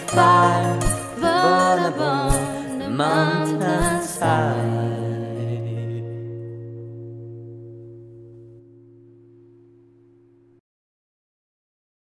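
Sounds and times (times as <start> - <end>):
acoustic guitar chord ringing: 0.0 - 10.6.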